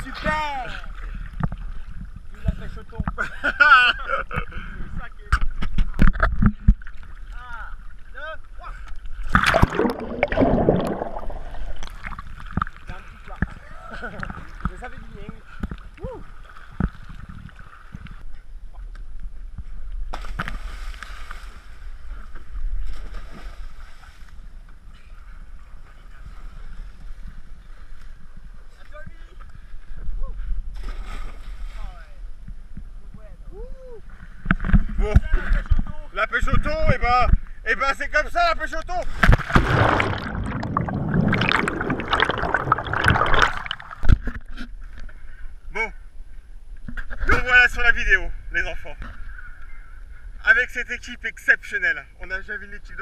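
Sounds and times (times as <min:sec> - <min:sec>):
water sloshing and splashing: 0:08.8 - 0:18.2, 0:39.0 - 0:45.0
water gurgling: 0:09.0 - 0:18.2, 0:39.2 - 0:44.6
rush of water: 0:09.2 - 0:15.3, 0:39.1 - 0:44.4.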